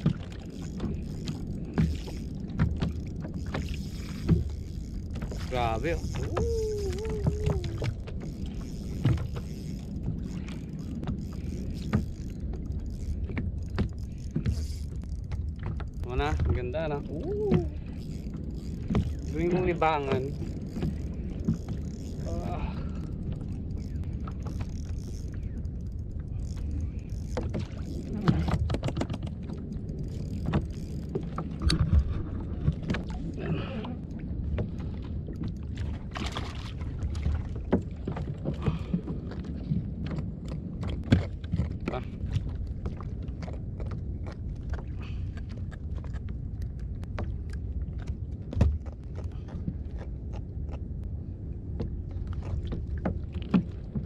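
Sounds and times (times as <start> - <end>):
low steady rumble: 0.0 - 54.0
water slapping against hull: 0.0 - 54.0.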